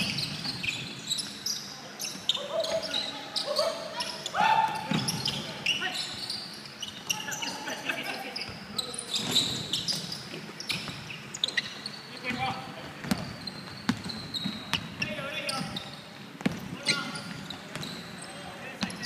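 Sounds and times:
basketball bouncing on wooden floor: 12.8 - 15.1, 16.4 - 18.0.

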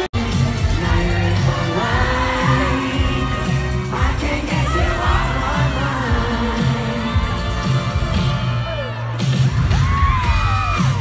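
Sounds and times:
crowd cheering and screaming: 0.2 - 11.0.

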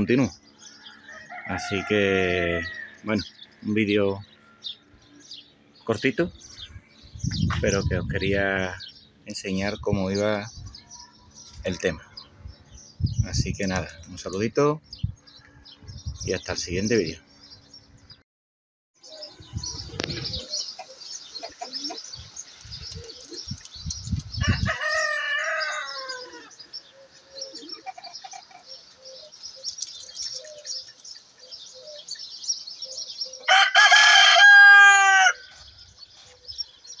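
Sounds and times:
small birds chirping: 0.0 - 18.2, 19.0 - 37.0
rooster crowing: 0.8 - 3.1, 24.4 - 26.6, 33.5 - 35.6.

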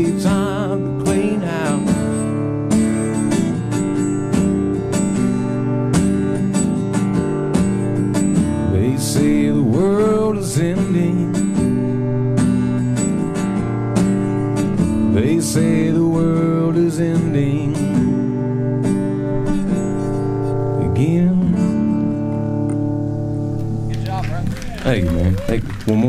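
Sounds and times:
person singing: 0.0 - 2.2, 8.6 - 11.8, 15.0 - 18.3, 20.7 - 22.3, 24.8 - 26.0
acoustic guitar strumming: 0.0 - 26.0.

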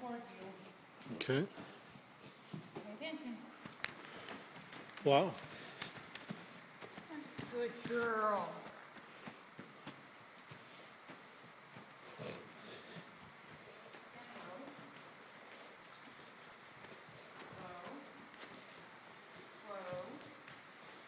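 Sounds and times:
horse hooves on soft dirt: 0.1 - 21.0.

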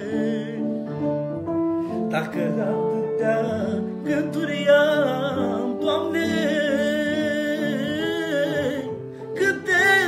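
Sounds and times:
man singing wordless vocal line: 0.0 - 10.0.

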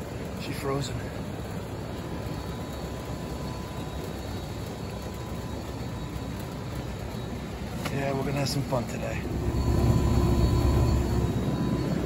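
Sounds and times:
air conditioner unit humming: 0.0 - 12.0
faint steady whine: 0.0 - 12.0.

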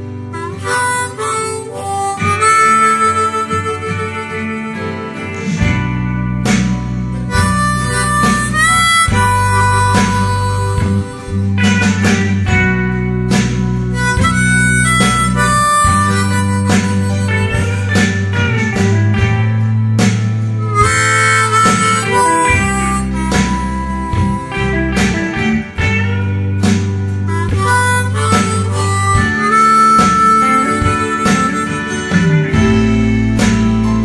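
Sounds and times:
guitar backing track: 0.0 - 34.0
harmonica slow melody: 0.0 - 34.0.

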